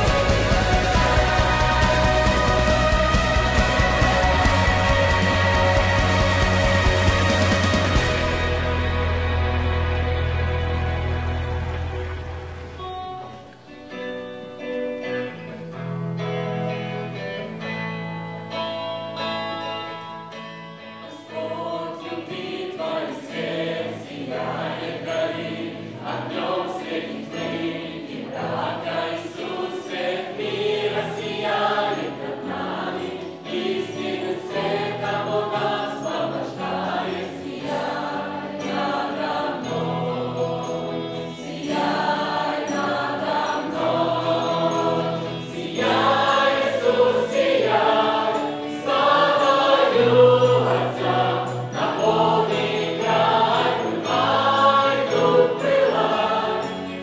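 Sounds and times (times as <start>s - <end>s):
choir singing slow sacred song: 0.0s - 14.0s, 21.0s - 57.0s.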